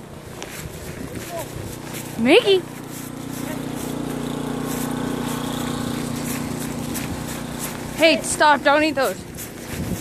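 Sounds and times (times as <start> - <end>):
motor engine humming: 0.0 - 10.0.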